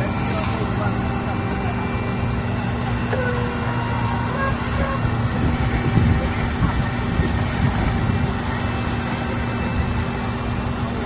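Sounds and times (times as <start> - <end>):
diesel engines droning: 0.0 - 11.0.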